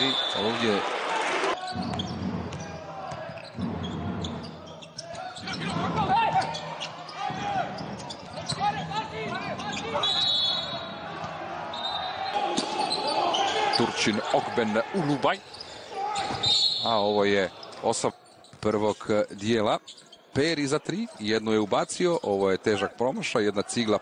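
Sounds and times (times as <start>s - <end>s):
crowd voices: 0.0s - 18.4s
sneakers squeaking on court: 1.6s - 10.3s, 15.4s - 16.8s, 17.5s - 19.1s, 19.8s - 20.4s.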